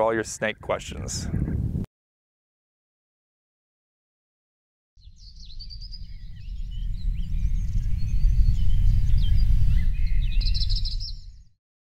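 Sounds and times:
small birds chirping and trilling: 0:05.0 - 0:11.6.

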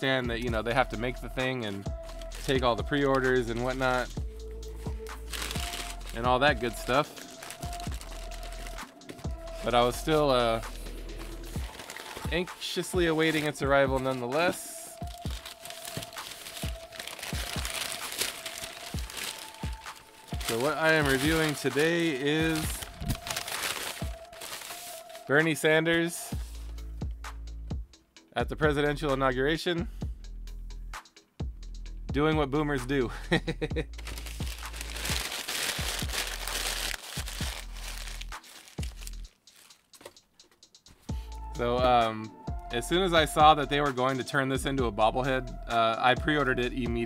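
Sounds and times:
music with thumping beat: 0:00.2 - 0:21.9, 0:22.5 - 0:24.7, 0:26.3 - 0:29.1, 0:29.9 - 0:44.0, 0:44.6 - 0:47.0
packing paper crinkling: 0:02.1 - 0:04.1, 0:04.8 - 0:25.4, 0:34.0 - 0:40.3.

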